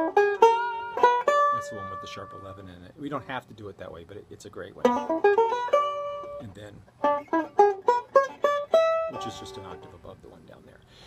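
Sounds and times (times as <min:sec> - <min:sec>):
banjo picking blues notes: 0:00.0 - 0:10.6.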